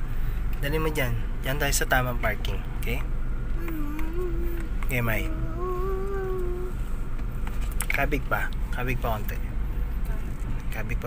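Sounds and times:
car engine and tyres rumbling: 0.0 - 11.0
voice holding long note: 3.6 - 6.8.

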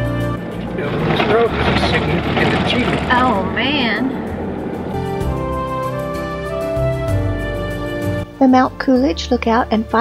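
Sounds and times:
vehicle driving on dirt road: 0.0 - 8.2
background music: 0.0 - 10.0.

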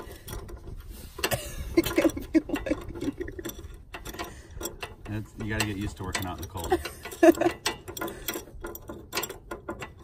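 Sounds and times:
metallic clicks of bolt turning: 0.0 - 10.0.

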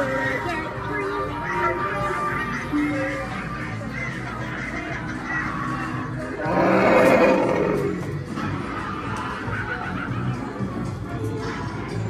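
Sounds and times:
background music: 0.0 - 12.0
recorded werewolf roar: 6.4 - 8.2.

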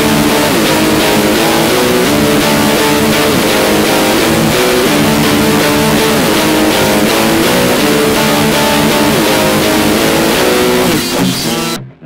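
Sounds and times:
distorted noise-metal music: 0.0 - 12.0.

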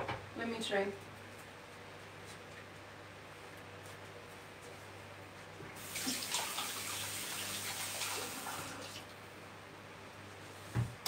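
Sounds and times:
tap water running into sink: 5.8 - 9.0.

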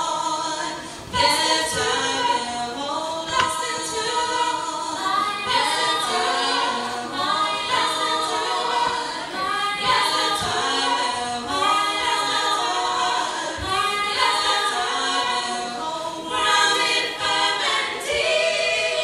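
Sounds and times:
women singing a cappella: 0.0 - 19.0.

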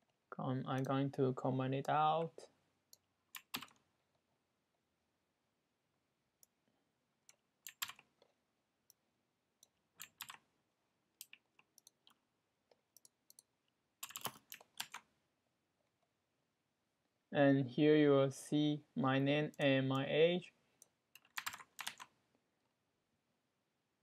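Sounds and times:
computer keyboard clicks: 7.7 - 8.0, 10.0 - 10.4, 13.0 - 15.0, 21.2 - 22.1.

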